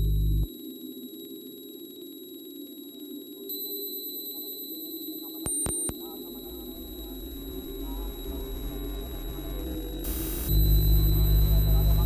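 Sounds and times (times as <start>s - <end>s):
synthesized drone: 0.0s - 0.5s, 6.4s - 12.0s
thin high steady tones: 6.0s - 12.0s.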